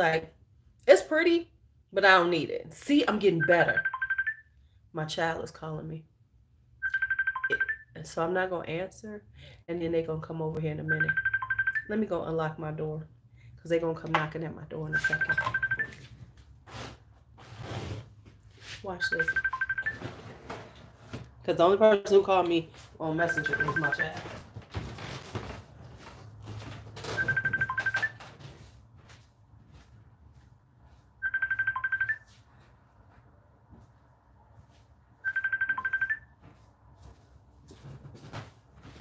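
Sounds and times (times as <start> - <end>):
smartphone ringtone trilling beep: 3.3 - 4.5, 6.8 - 7.9, 10.8 - 11.9, 14.9 - 16.1, 19.0 - 20.1, 23.2 - 24.2, 27.1 - 28.2, 31.2 - 32.4, 35.2 - 36.3.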